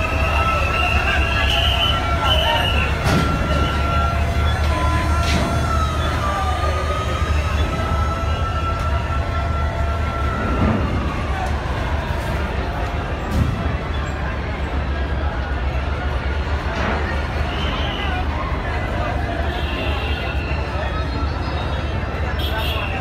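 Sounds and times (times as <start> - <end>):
boat engine rumble: 0.0 - 23.0.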